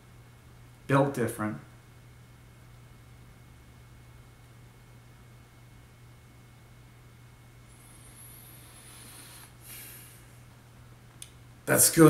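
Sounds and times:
faint hiss: 0:07.7 - 0:10.5.

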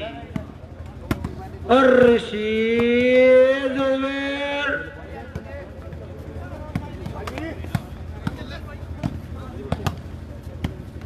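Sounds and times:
faint voices: 0:00.0 - 0:11.0
volleyball slaps: 0:02.0 - 0:03.2, 0:06.7 - 0:10.0.

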